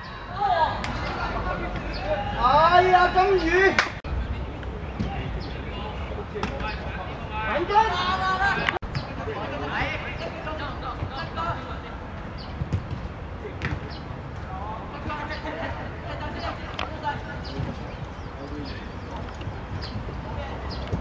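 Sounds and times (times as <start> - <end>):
players calling and shouting: 0.0 - 21.0.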